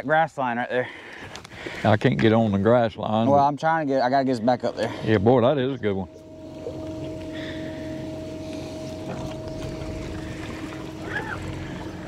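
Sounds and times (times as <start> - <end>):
electric trolling motor humming: 4.6 - 12.0.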